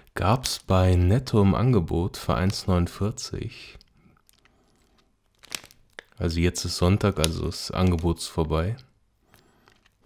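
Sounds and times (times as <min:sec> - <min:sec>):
plastic wrapper crinkling: 0:02.2 - 0:10.0.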